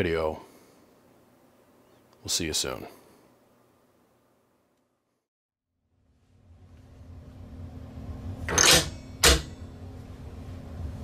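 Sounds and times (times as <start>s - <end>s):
steady low hum: 5.8s - 11.0s.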